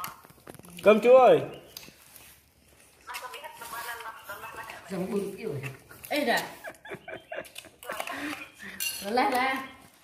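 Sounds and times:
spoons clinking on metal pots: 7.8s - 9.8s.

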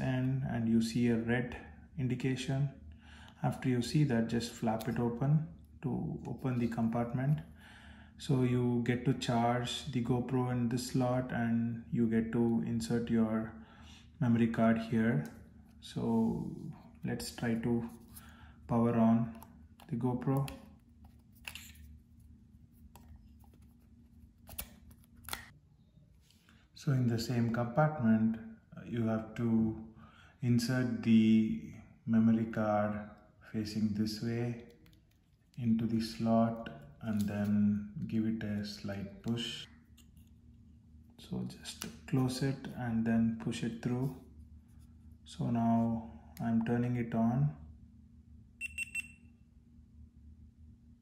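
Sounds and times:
low steady hum: 0.0s - 51.0s
high-pitched camera beeps: 48.6s - 49.2s.

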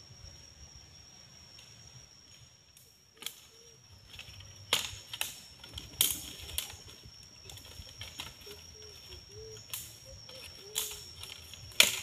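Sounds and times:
dry leaves crunching underfoot: 3.2s - 12.0s.

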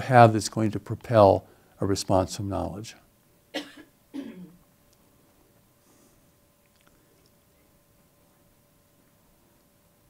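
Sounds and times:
man clearing throat with coughs: 3.6s - 4.6s.

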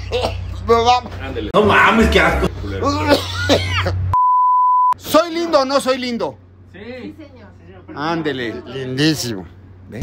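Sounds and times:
censor bleep: 4.2s - 5.0s.

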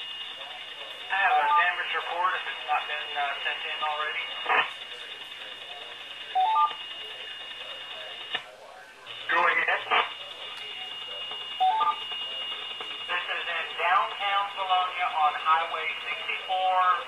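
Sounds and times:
noisy radio keying bursts: 0.0s - 17.0s
radio hiss: 0.0s - 17.0s.

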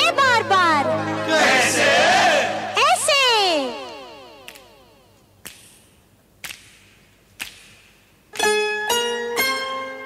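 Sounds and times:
dance song: 1.3s - 5.3s.

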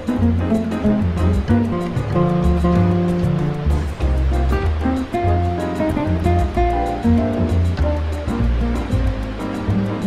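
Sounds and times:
deep bass line: 0.0s - 10.0s
high percussion ticking: 0.0s - 10.0s
instrumental jazz music: 0.0s - 10.0s.

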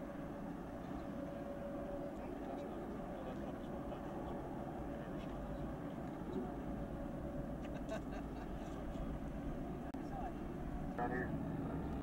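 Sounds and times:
aircraft radial engines droning: 0.0s - 12.0s.

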